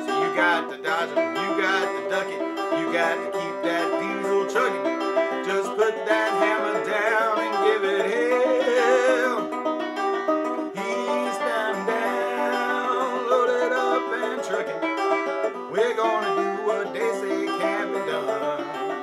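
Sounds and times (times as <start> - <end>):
banjo picking chords: 0.0 - 19.0.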